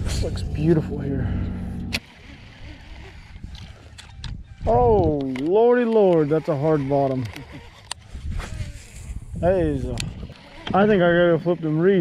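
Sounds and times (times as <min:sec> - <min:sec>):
wind and water rumble: 0:00.0 - 0:05.2.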